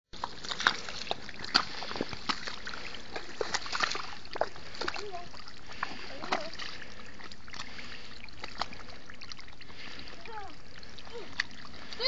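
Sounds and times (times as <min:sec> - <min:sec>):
boots splashing through water: 0:00.2 - 0:12.0.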